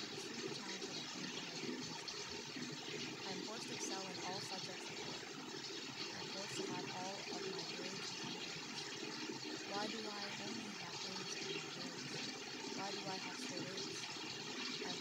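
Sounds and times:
overlapping spoken voices: 9.7s - 11.2s.

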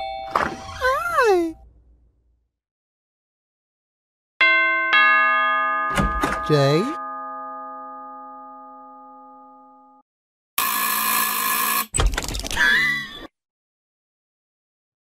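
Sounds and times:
doorbell ding-dong chime: 0.0s - 0.4s, 4.4s - 10.0s
cartoon voice: 0.8s - 1.6s
harsh buzzing sound: 10.6s - 11.9s.

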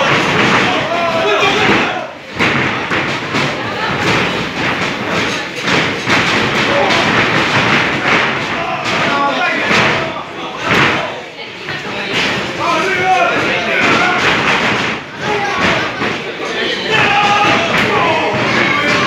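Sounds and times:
crowd shouting: 0.0s - 4.6s, 5.2s - 11.4s, 12.0s - 19.0s
thuds of bodies hitting ring: 0.0s - 19.0s.

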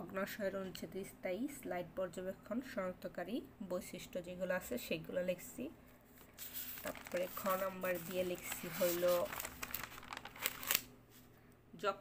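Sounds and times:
notebook pages turning: 6.2s - 10.9s
paper flicks: 6.4s - 10.9s.

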